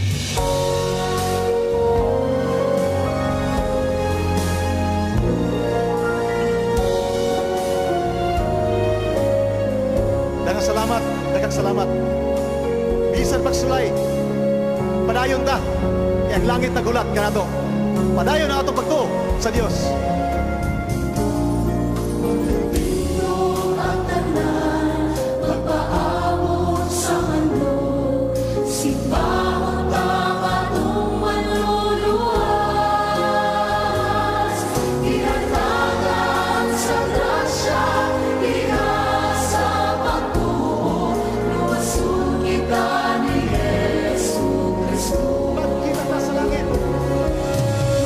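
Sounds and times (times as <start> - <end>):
instrumental backing: 0.0 - 48.0
people singing worship song: 22.4 - 48.0.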